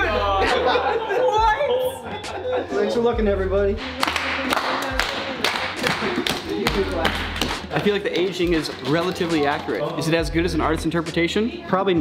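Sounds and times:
voices: 0:00.0 - 0:03.5
hands clapping rhythmically: 0:03.8 - 0:10.3.

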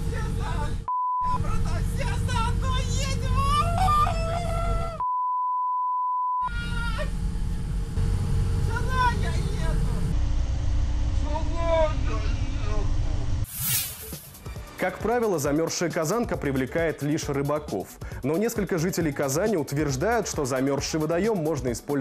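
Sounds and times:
bus rumbling: 0:00.0 - 0:05.0, 0:06.5 - 0:13.4
censor bleep tone: 0:00.9 - 0:01.4, 0:05.0 - 0:06.5
man shouting: 0:01.3 - 0:05.0, 0:06.4 - 0:07.1.

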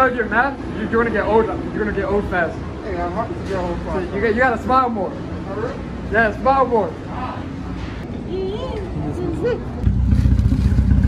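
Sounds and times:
car engine exhaust rumble: 0:09.8 - 0:11.0.

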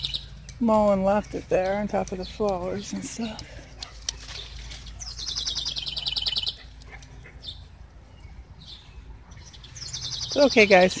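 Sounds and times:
songbird trilling: 0:00.0 - 0:00.4, 0:04.4 - 0:06.7, 0:08.6 - 0:11.0.

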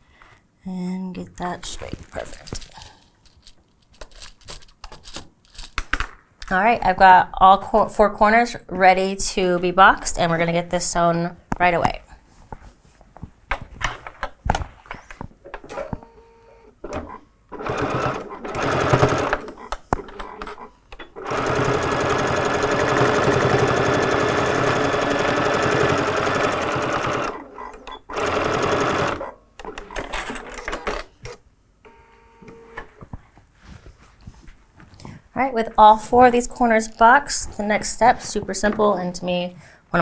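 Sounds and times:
sewing machine stitching: 0:17.0 - 0:31.0.

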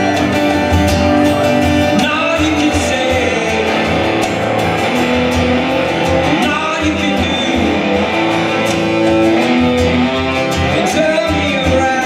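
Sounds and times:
electric guitar: 0:00.0 - 0:12.0
strummed acoustic guitar: 0:00.0 - 0:12.0.

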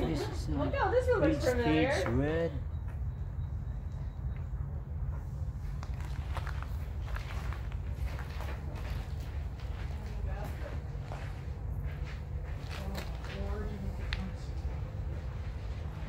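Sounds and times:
steady low rumble: 0:02.0 - 0:16.0
footsteps crunching on gravel: 0:05.6 - 0:16.0.

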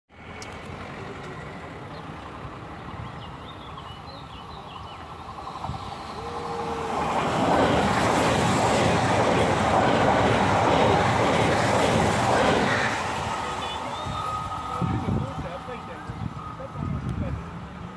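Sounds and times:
train wheels rolling on rails: 0:04.5 - 0:17.9.

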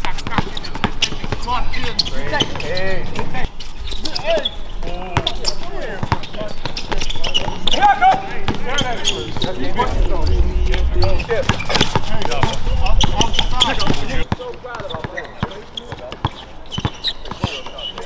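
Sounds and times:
basketball bouncing on hard court: 0:00.0 - 0:01.5, 0:05.1 - 0:09.6, 0:11.2 - 0:18.0
players calling out: 0:00.0 - 0:18.0.

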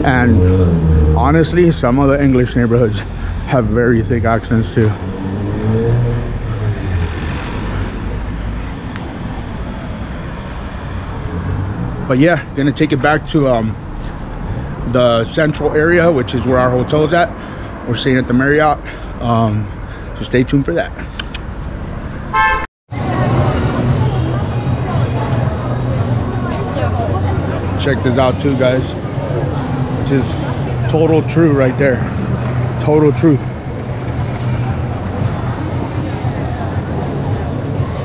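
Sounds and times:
vehicle passing by: 0:00.0 - 0:18.2, 0:23.0 - 0:38.0
busy street noise: 0:00.0 - 0:38.0
steady traffic rumble: 0:00.0 - 0:38.0
car horn toot: 0:22.3 - 0:22.7.

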